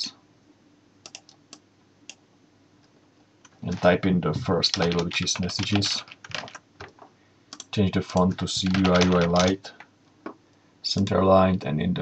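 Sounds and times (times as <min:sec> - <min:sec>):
computer mouse clicks: 0:01.0 - 0:02.2, 0:07.5 - 0:07.7.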